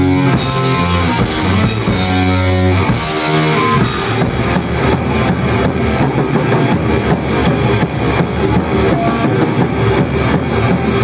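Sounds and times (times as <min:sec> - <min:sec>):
drum and cymbal hits: 0:00.0 - 0:11.0
metal band playing live: 0:00.0 - 0:11.0.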